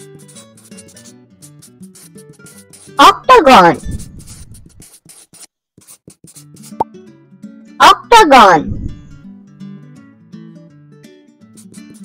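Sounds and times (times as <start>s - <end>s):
pen scribbling on paper: 0.0s - 6.8s, 11.5s - 12.0s.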